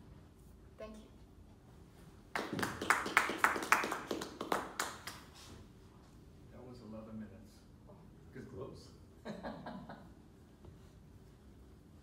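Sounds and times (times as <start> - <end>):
people clapping: 2.3 - 5.4.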